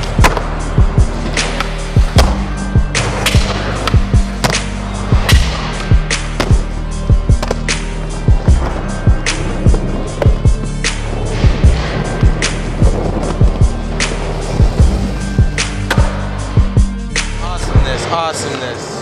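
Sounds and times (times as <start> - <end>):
skateboard rolling on wooden ramps: 6.4 - 16.2.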